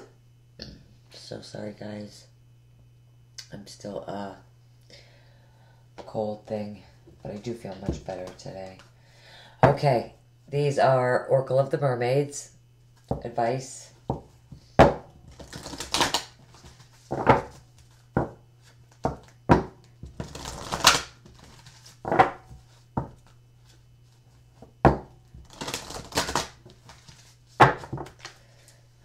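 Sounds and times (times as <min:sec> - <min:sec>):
cards being shuffled: 0:15.3 - 0:19.4, 0:20.0 - 0:24.2, 0:25.4 - 0:28.4.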